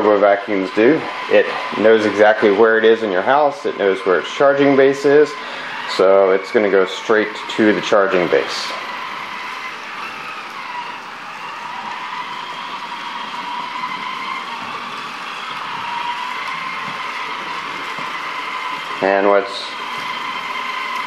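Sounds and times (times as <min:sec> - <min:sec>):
robot vacuum motor whine: 0:00.0 - 0:21.0.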